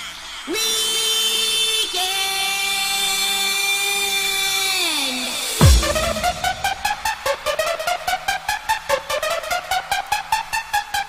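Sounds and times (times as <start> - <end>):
buzzy electronic synth tone: 5.6 - 7.4.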